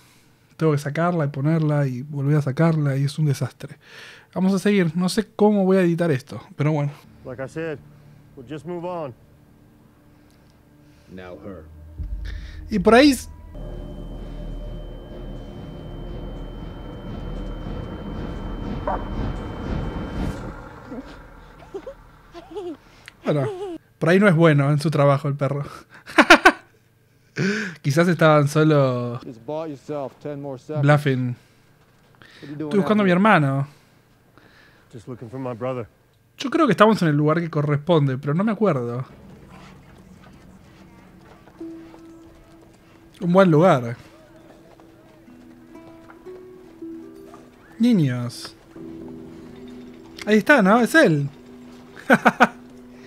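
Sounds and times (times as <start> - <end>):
low background hum: 5.8 - 53.0
soft orchestral score: 6.9 - 23.6, 38.7 - 53.0
faint horse hoofbeats: 39.0 - 53.0.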